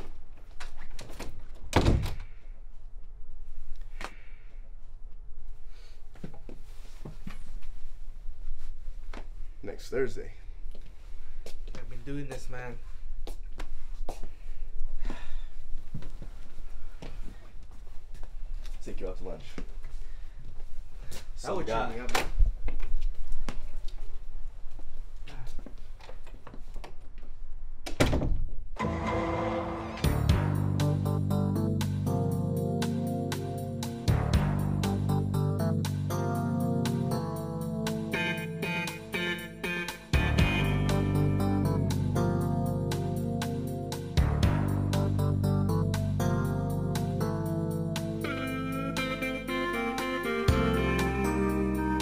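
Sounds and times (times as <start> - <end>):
door closing with heavy thunk: 1.7 - 2.3
music: 28.8 - 52.0.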